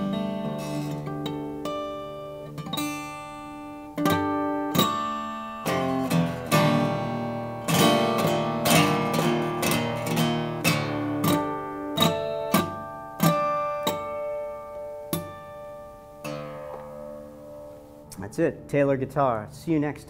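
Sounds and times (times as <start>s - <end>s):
acoustic guitar fingerstyle: 0.0s - 18.3s.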